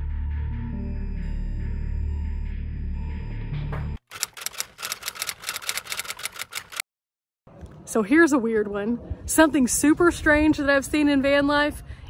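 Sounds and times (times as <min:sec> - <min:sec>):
dark music with low drone: 0:00.0 - 0:04.0
typewriter key clacks: 0:04.1 - 0:06.8.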